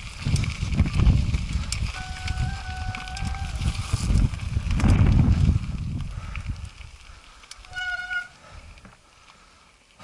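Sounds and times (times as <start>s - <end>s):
tyres rolling over gravel: 0.0s - 10.0s
bike disc brake squealing: 1.8s - 4.1s, 7.6s - 8.4s.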